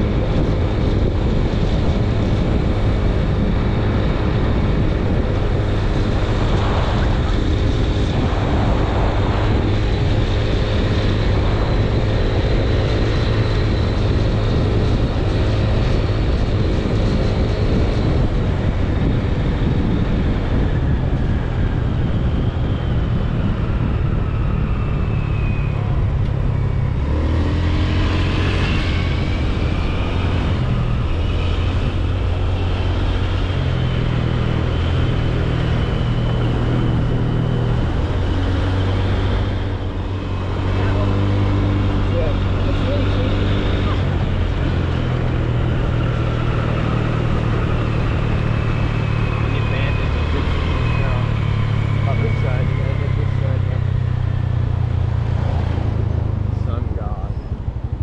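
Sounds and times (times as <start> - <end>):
car engine hum: 0.0 - 58.0
tyre and wind noise: 0.0 - 58.0.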